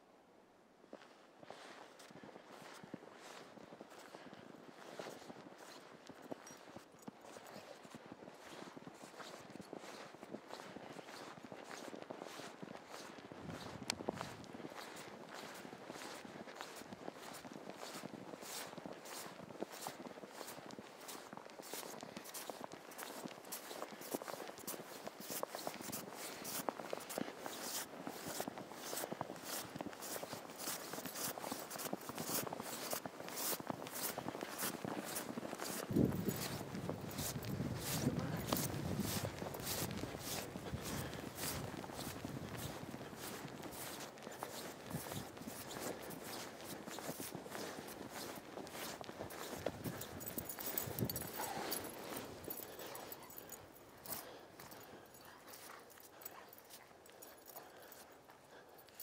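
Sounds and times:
footsteps crunching through snow: 0:00.9 - 0:59.0
soft scuffs: 0:08.4 - 0:59.0.

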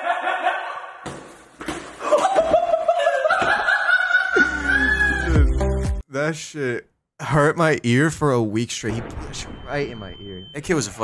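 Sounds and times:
man laughing: 0:00.0 - 0:01.0, 0:02.0 - 0:05.6.

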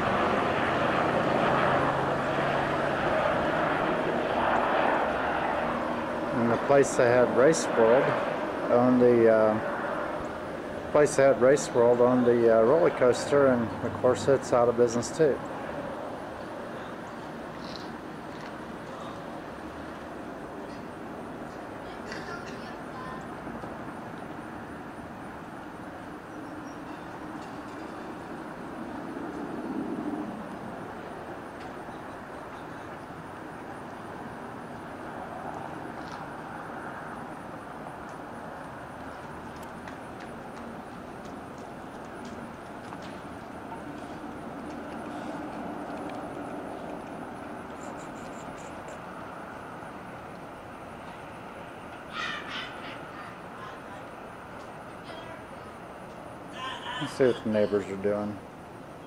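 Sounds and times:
road traffic rumble: 0:00.0 - 0:59.0.

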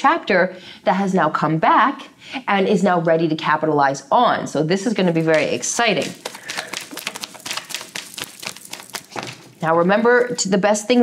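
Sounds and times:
cards being shuffled by hand: 0:05.1 - 0:10.4.

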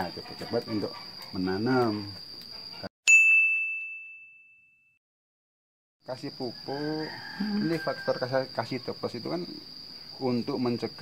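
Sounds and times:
insects chirring: 0:00.0 - 0:02.9, 0:06.0 - 0:11.0
bright bell ding: 0:03.1 - 0:05.0.

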